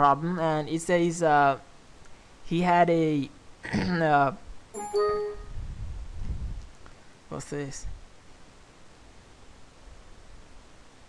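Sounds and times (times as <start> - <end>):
computer alert chime: 4.8 - 5.6.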